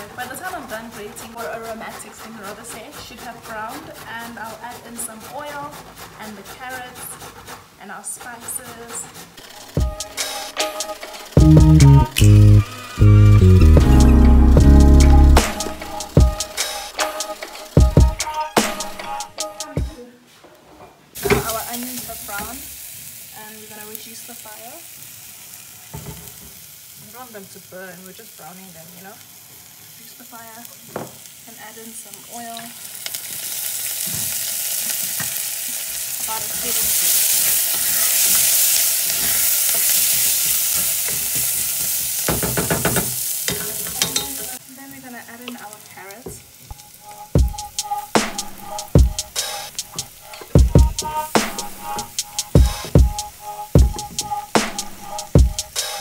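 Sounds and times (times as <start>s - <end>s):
wooden spoon stirring: 0.0s - 11.4s, 33.1s - 44.6s
vegetables sizzling in a pot: 0.0s - 19.6s, 21.1s - 56.0s.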